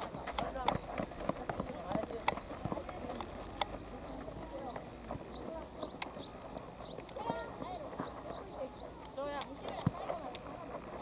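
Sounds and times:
running feet on hard field: 0.0s - 11.0s
players calling and shouting: 0.1s - 11.0s.

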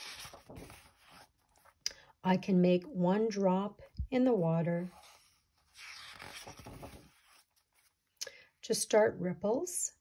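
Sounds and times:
book page turning: 0.0s - 1.8s, 4.8s - 8.1s.

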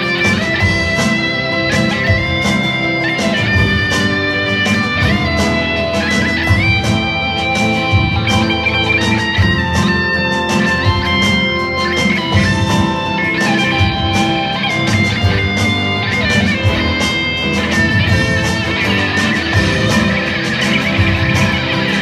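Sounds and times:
drums: 0.0s - 22.0s
electric guitar: 0.0s - 22.0s
keyboard piano: 0.0s - 22.0s
strummed acoustic guitar: 0.0s - 22.0s.

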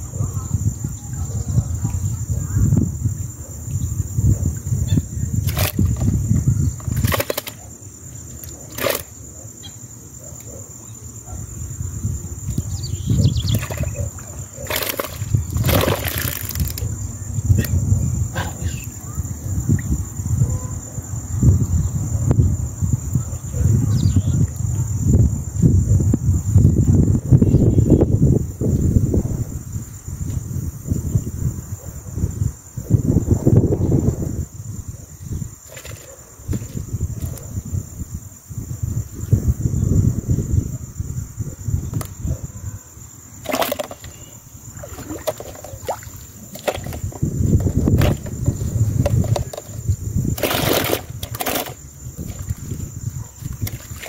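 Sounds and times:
crickets chirping: 0.0s - 54.0s
wind rumble on microphone: 0.0s - 54.0s.

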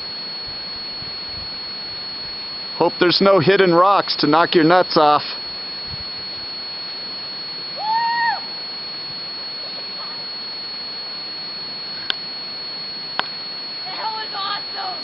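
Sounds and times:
steady hiss: 0.0s - 15.0s
thin high whine: 0.0s - 15.0s.

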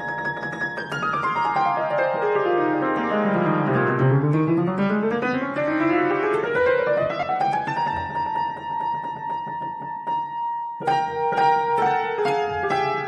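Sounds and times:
piano run of notes: 0.0s - 13.0s.

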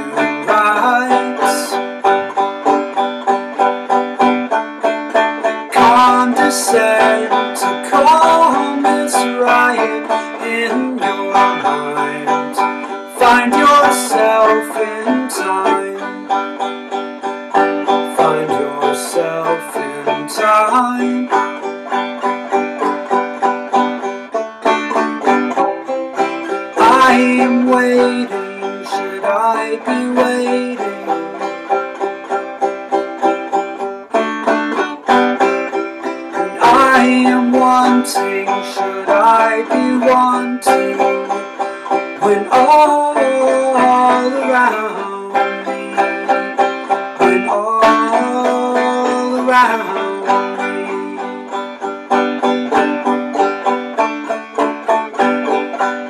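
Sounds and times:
banjo finger-picked: 0.0s - 56.0s.

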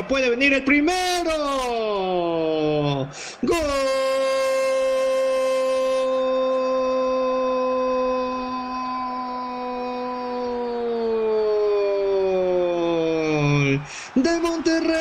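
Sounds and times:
commentator shouting goal: 12.2s - 15.0s.

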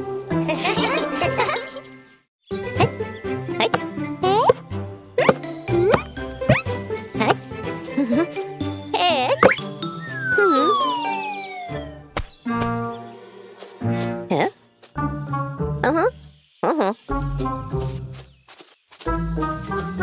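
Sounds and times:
upbeat cartoon music: 0.0s - 16.2s, 16.9s - 18.1s, 19.1s - 20.0s
falling pitch glide: 10.2s - 12.1s.

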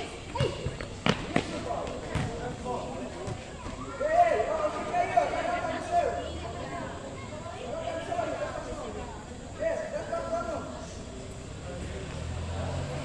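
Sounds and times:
ball thudding on hard floor: 2.1s - 2.4s
people shouting: 3.8s - 6.2s.

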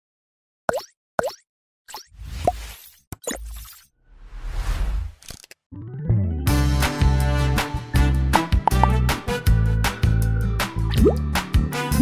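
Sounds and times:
cartoon plop sound effects: 0.7s - 2.0s, 8.7s - 9.0s, 10.9s - 11.2s.

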